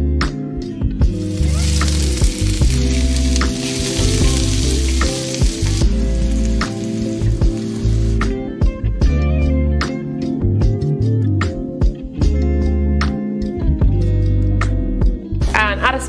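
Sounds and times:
background guitar music: 0.0 - 16.0
onion sizzling in hot oil: 1.1 - 8.3
wooden spoon stirring: 1.2 - 8.2.

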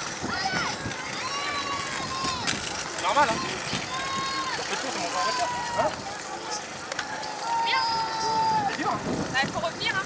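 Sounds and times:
spectators' voices: 0.0 - 10.0.

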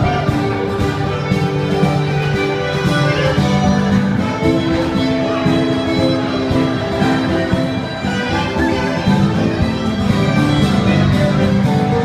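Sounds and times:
fiddle: 0.0 - 12.0
guitar: 0.0 - 12.0.

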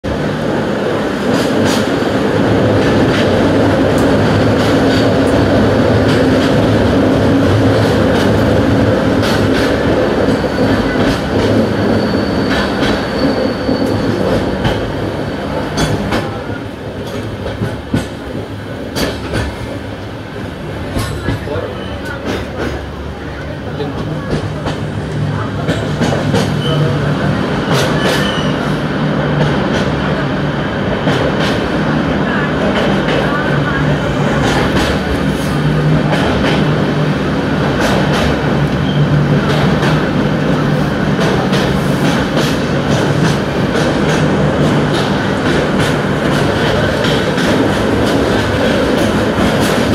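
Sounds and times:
rumble of train wheels: 0.0 - 49.9.

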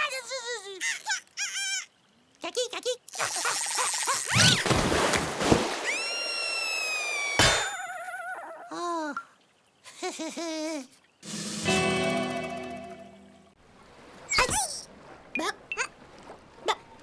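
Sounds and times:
squeaky warbling character voice: 0.8 - 4.6, 14.3 - 14.8.

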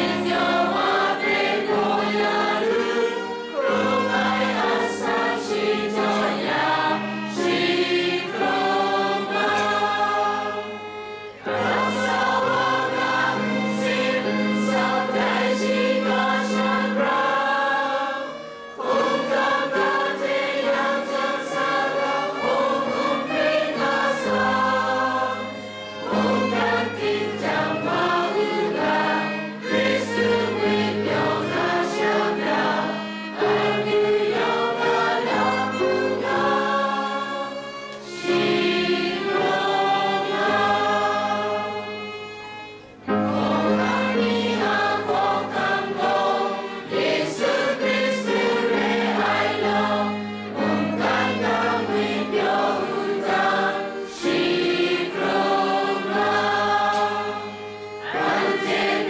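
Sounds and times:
group singing a hymn: 0.0 - 59.0.

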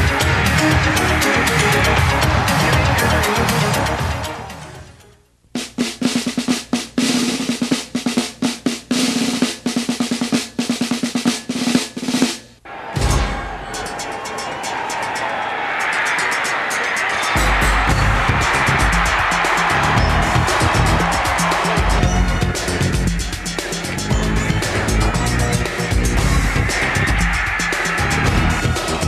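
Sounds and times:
music with heavy bass beat: 0.0 - 4.8, 15.9 - 29.0.

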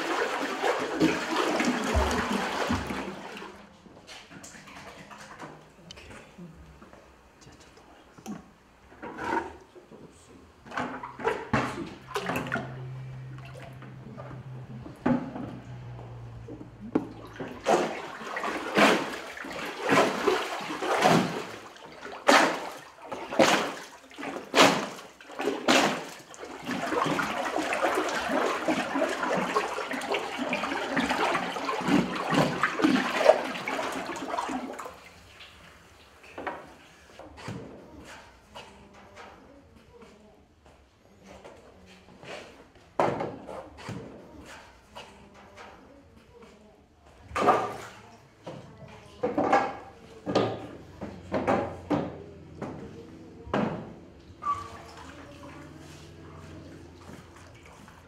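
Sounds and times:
water churning and sloshing: 0.0 - 6.6, 8.2 - 39.6, 41.1 - 58.0
stick splashing in slurry: 17.3 - 34.9.

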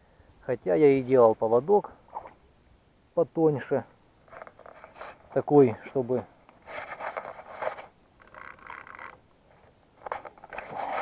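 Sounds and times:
rustling and scraping in reeds: 4.2 - 11.0.

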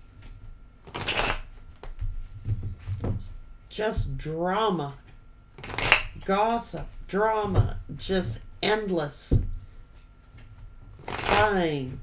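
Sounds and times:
cards riffling: 0.8 - 1.9, 5.6 - 6.2, 11.0 - 11.6.

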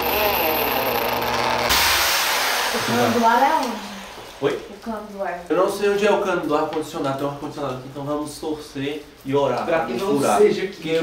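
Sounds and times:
electric drill boring into wall: 0.0 - 4.5.

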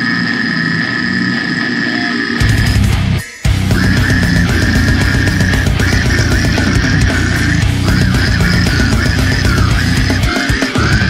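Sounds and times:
high-pitched held tone: 0.0 - 11.0.

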